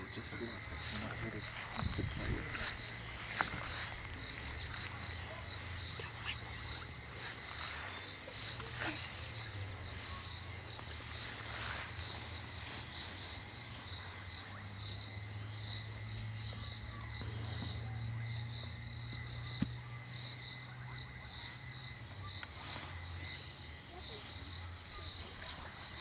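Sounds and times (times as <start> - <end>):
cricket chirping: 0.0 - 26.0.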